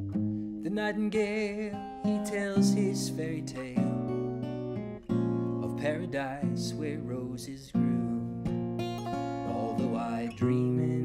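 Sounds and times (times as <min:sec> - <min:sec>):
acoustic guitar chords: 0:00.0 - 0:11.0
man singing: 0:00.6 - 0:04.6, 0:05.6 - 0:08.5, 0:09.3 - 0:11.0.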